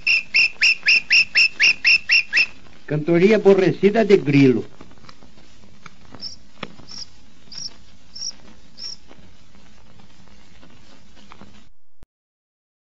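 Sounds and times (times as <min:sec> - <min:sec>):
steady hiss: 0:00.0 - 0:11.7
cricket chirping: 0:06.2 - 0:09.0.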